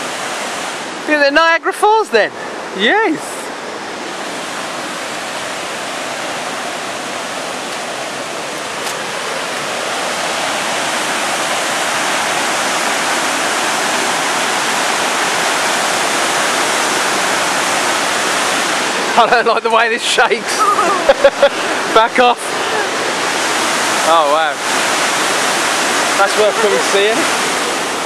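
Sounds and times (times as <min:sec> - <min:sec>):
waterfall rushing: 0:00.0 - 0:28.0.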